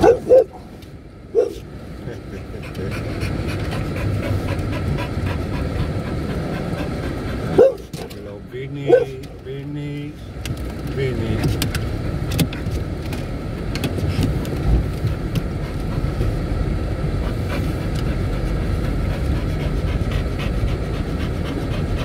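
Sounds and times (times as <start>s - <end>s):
car road and engine noise: 0.0s - 22.0s
tyres on brick road: 0.0s - 22.0s.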